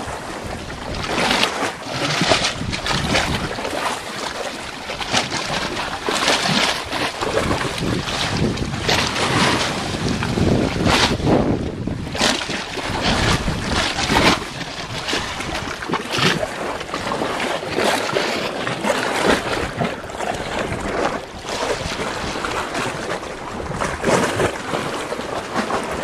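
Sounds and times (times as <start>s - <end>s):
seawater lapping against rock: 0.0s - 26.0s
wind buffeting microphone: 0.0s - 26.0s.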